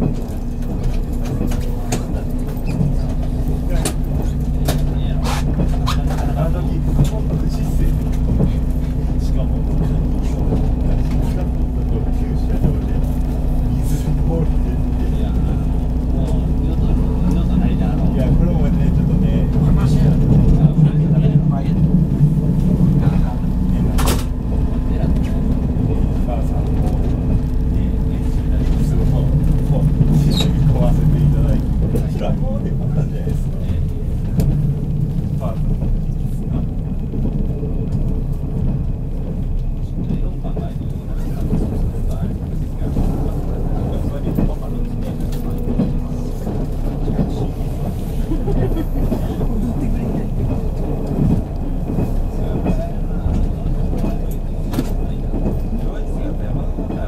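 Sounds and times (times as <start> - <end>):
train interior rumble and hum: 0.0 - 57.0.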